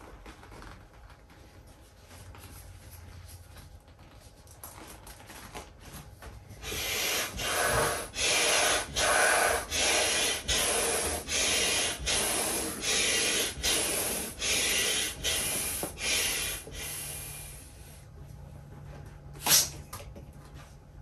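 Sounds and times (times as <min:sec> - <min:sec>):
hand air pump strokes: 0:06.6 - 0:17.7.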